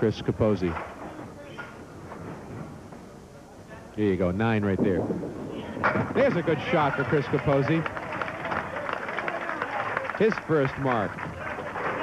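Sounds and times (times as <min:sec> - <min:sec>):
murmur of spectators' voices: 0:00.0 - 0:12.0
room tone of bowling hall: 0:00.0 - 0:12.0.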